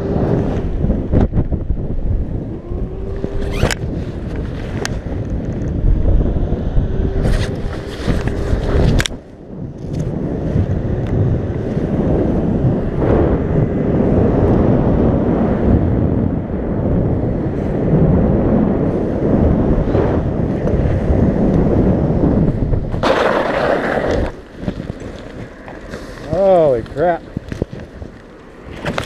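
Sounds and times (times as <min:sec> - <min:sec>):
wind rushing over microphone: 0:00.0 - 0:29.0.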